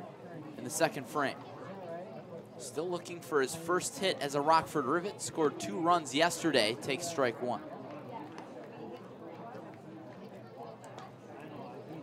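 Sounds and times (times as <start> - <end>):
crowd chatting: 0.0 - 12.0.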